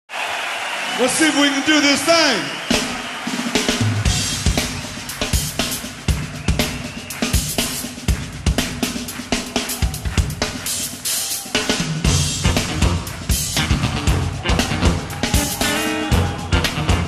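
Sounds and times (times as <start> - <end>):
drum kit groove: 2.6 - 17.0
funk band playing: 2.8 - 17.0.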